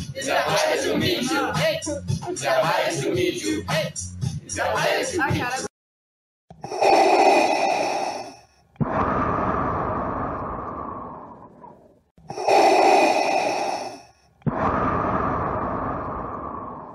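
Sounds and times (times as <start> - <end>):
mechanical respirator breathing: 6.5 - 16.9.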